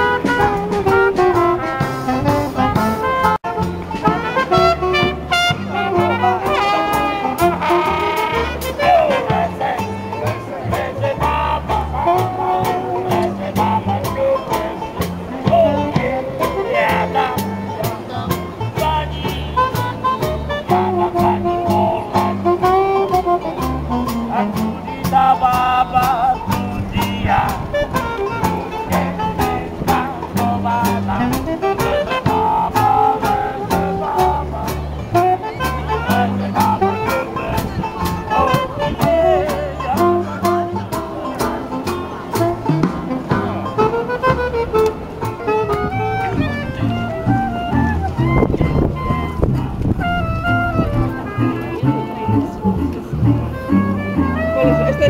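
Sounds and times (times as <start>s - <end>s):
drums ticking beat: 0.0s - 6.6s, 7.4s - 50.0s
saxophone melody: 0.0s - 17.8s, 18.6s - 55.0s
banjo: 0.0s - 55.0s
double bass walking: 0.0s - 55.0s.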